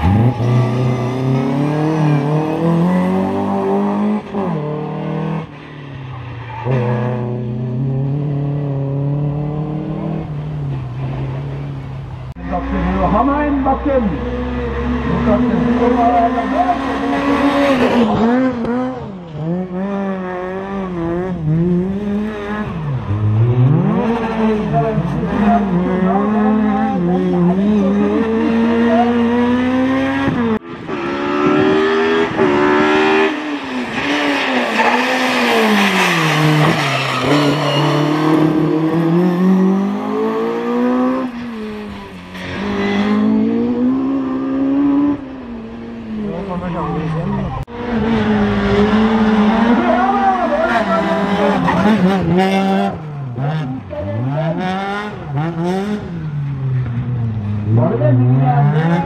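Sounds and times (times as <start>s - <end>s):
rally car engines revving hard: 0.0s - 5.6s, 6.5s - 59.0s.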